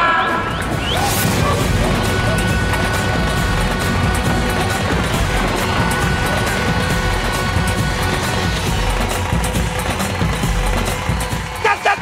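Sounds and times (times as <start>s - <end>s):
background music: 0.0s - 12.0s
dense noisy bed: 0.0s - 12.0s.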